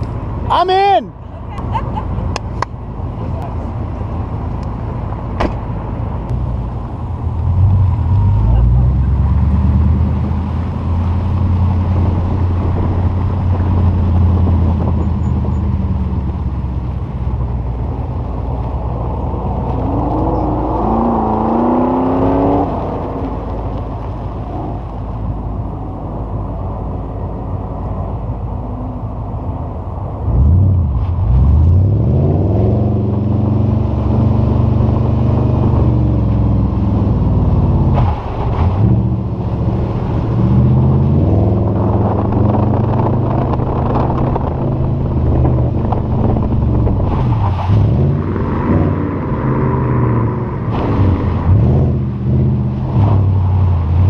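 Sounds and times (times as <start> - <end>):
car engine revving: 3.2 - 29.4, 30.2 - 54.0.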